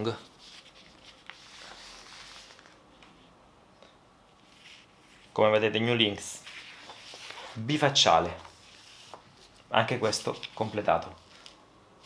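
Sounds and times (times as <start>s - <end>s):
paper poster rustling: 0.0s - 3.3s, 4.3s - 11.6s.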